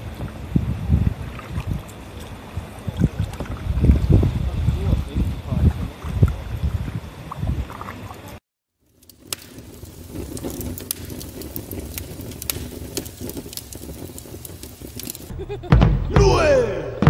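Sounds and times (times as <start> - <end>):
low steady fire rumble: 0.0 - 16.7
wind: 0.0 - 17.0
water splashing: 7.3 - 15.4
wood fire crackling and popping: 8.3 - 16.8.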